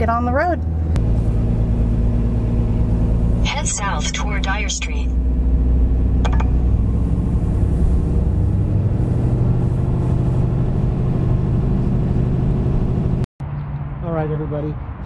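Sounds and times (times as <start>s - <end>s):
diesel truck engine drone: 0.0s - 15.0s.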